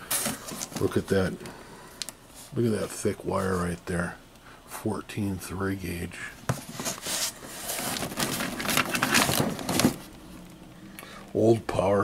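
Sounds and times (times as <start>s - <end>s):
cords and adapters rustling and knocking: 0.0s - 2.2s, 6.4s - 10.2s.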